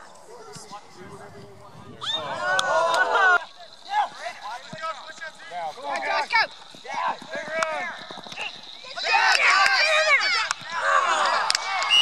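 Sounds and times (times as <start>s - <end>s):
spectators shouting encouragement: 2.0s - 4.3s, 8.4s - 12.0s.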